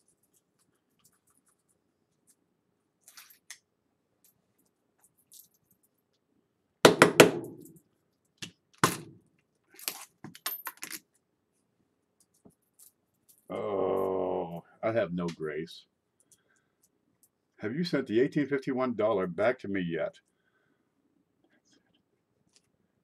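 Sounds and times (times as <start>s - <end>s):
clatter of coins: 3.0s - 3.4s, 9.7s - 11.1s
coins clinking: 9.8s - 11.0s.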